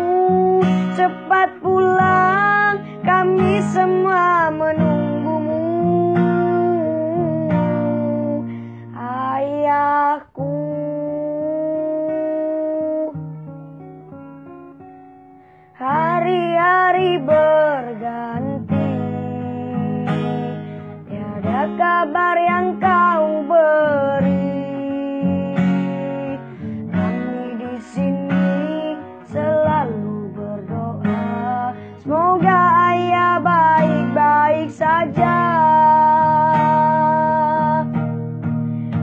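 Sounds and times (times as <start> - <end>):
boy singing ballad: 0.0 - 13.2, 15.8 - 38.0
acoustic guitar strumming: 0.0 - 39.0.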